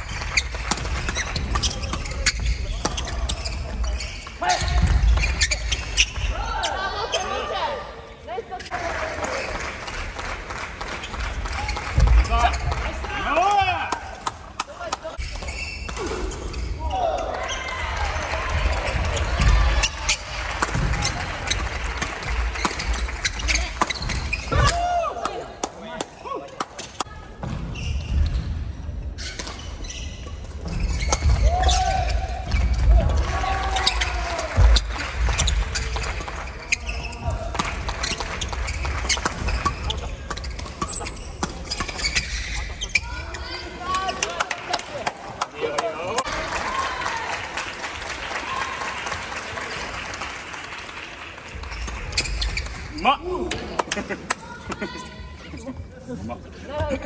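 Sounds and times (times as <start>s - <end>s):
shoes squeaking: 0.0s - 7.5s, 14.3s - 16.8s, 18.7s - 24.9s, 27.7s - 33.0s, 33.6s - 44.4s, 51.6s - 53.2s.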